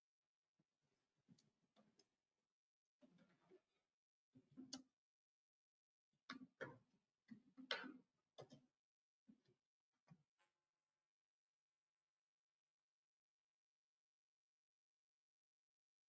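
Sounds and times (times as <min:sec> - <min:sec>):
faint irregular clicks and taps: 0:04.4 - 0:05.0, 0:06.3 - 0:10.6.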